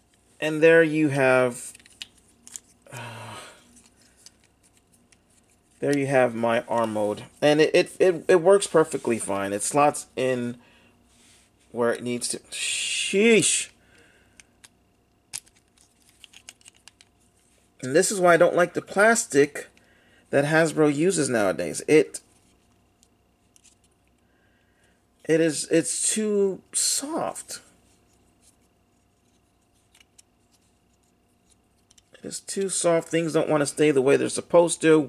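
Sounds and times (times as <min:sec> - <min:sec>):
plastic parts clicking together: 0:14.4 - 0:17.2.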